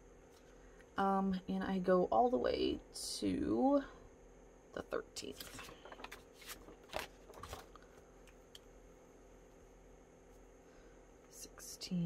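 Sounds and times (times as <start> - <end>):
paper rustling: 5.3 - 8.0.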